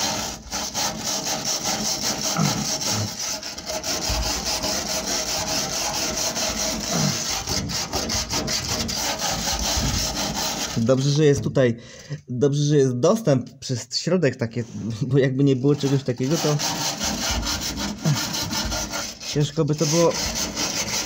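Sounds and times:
hand tool scraping rusty metal: 0:00.0 - 0:11.3, 0:14.7 - 0:21.0.

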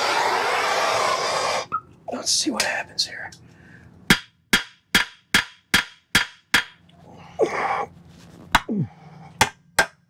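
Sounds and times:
hammer striking metal: 0:04.1 - 0:06.8, 0:09.4 - 0:10.0.

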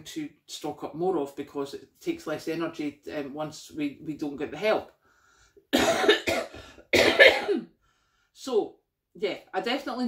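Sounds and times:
woman coughing: 0:05.7 - 0:07.7.

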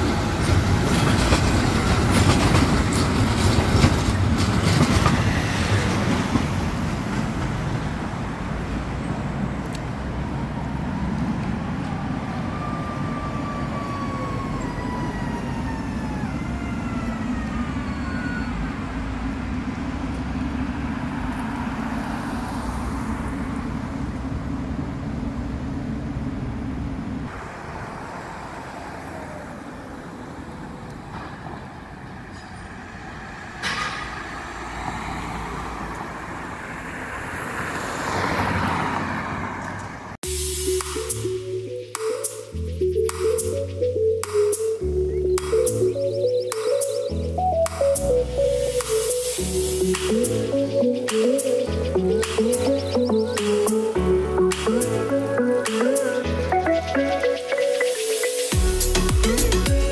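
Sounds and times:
rumble of passing vehicles: 0:00.0 - 0:59.9.

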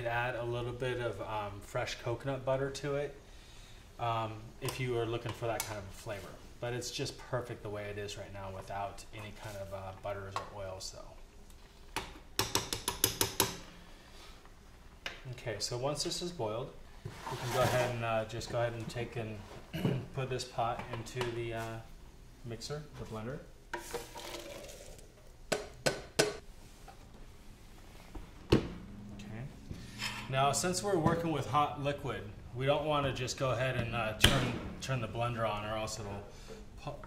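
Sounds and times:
liquid poured into blender jar: 0:23.9 - 0:25.1.

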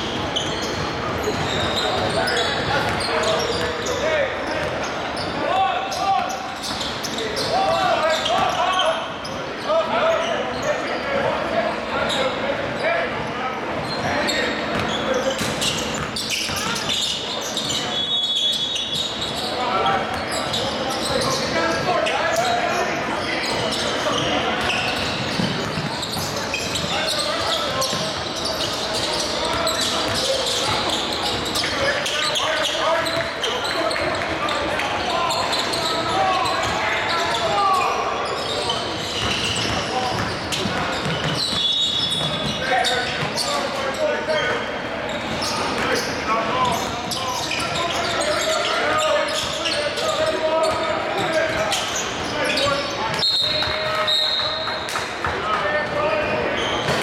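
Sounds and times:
players' voices and calls: 0:00.0 - 0:57.0.

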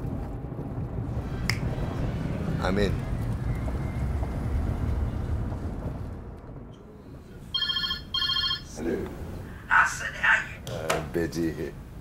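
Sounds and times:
telephone ringing: 0:07.5 - 0:08.8.

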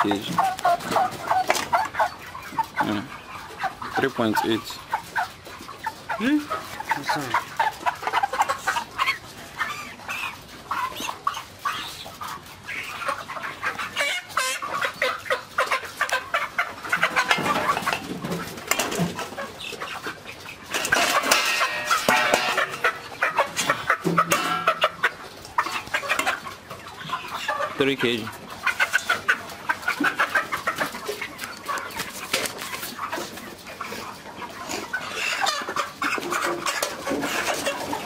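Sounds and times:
chickens clucking and calling: 0:00.0 - 0:38.0.

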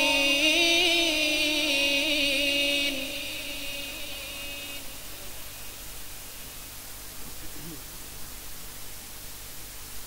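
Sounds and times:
person chanting: 0:00.0 - 0:05.8
steady hiss: 0:00.0 - 0:10.0.

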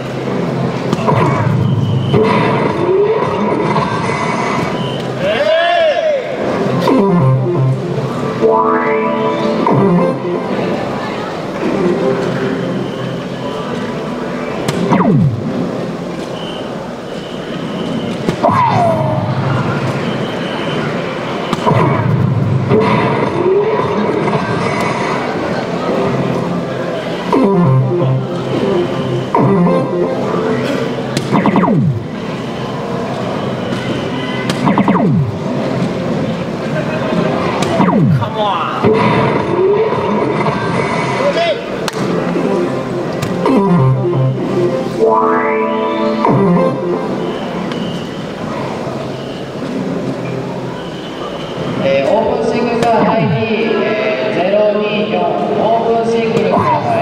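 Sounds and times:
arcade machine background music: 0:00.0 - 0:04.8, 0:06.4 - 0:16.2, 0:20.8 - 0:50.7
hall chatter: 0:00.0 - 0:57.0.

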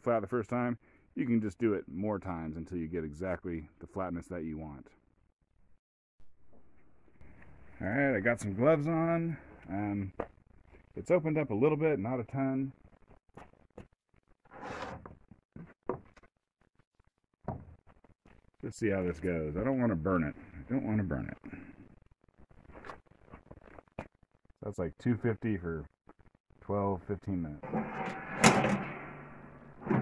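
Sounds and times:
board scraping on worktable: 0:14.5 - 0:15.2, 0:27.6 - 0:30.0
metal oven door clank: 0:27.6 - 0:29.2.

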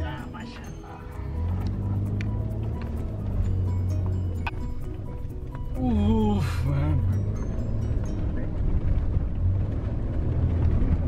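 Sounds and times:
music playing: 0:00.0 - 0:09.1
engine running under load: 0:00.0 - 0:11.0.

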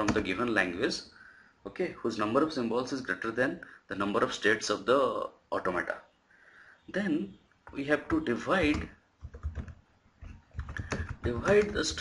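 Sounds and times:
computer keyboard typing: 0:08.6 - 0:12.0.

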